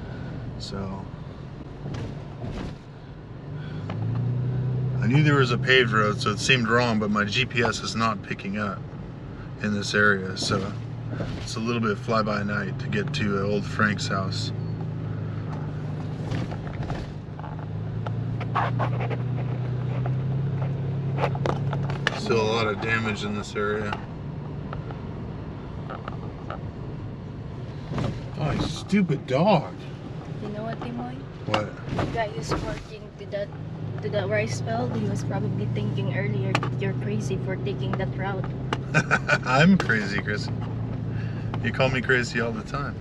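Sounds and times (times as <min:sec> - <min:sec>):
car engine and road rumble: 0:00.0 - 0:43.0.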